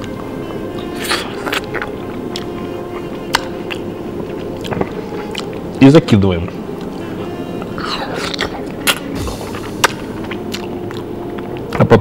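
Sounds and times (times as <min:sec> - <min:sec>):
background music: 0:00.0 - 0:12.0
man eating with hands: 0:00.0 - 0:12.0.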